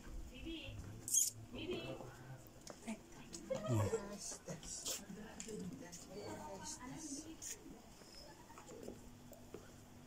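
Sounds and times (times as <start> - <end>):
faint squeaky high sounds: 1.1 - 1.4.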